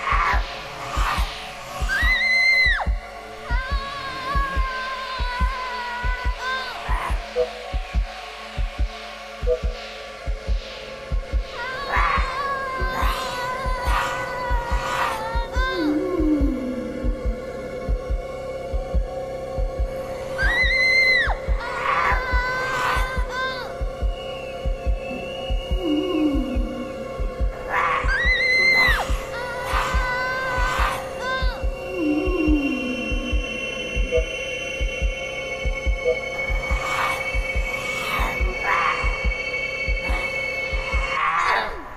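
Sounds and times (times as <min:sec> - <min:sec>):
heartbeat thumps: 0:00.0 - 0:41.2
low drone: 0:00.0 - 0:41.9
low groan falling in pitch: 0:14.6 - 0:18.2, 0:25.0 - 0:29.0, 0:31.4 - 0:41.1
woman screaming: 0:20.4 - 0:23.7, 0:27.7 - 0:31.6
high electronic hum: 0:21.4 - 0:41.2.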